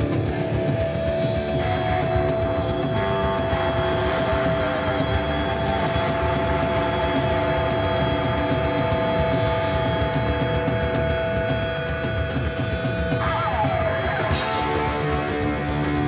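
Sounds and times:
distorted electric guitars: 0.0s - 16.0s
drum kit pounding: 0.0s - 16.0s
heavy rock band playing: 0.0s - 16.0s.

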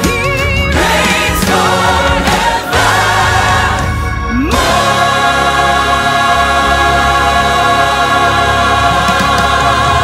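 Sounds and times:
choir and orchestra holding chord: 0.7s - 10.0s.

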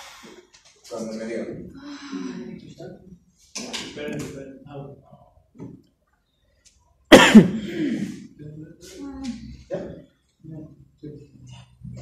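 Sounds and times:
person's voice: 1.1s - 2.8s
person coughing: 7.1s - 8.2s.

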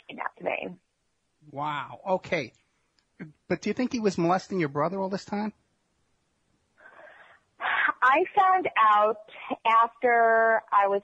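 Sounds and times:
faint breath: 6.8s - 7.6s.

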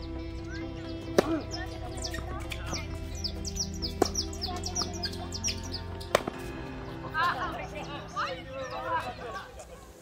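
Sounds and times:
birds chirping: 0.0s - 10.0s
tennis balls struck by rackets: 1.0s - 2.8s, 3.5s - 5.1s, 5.9s - 6.5s.

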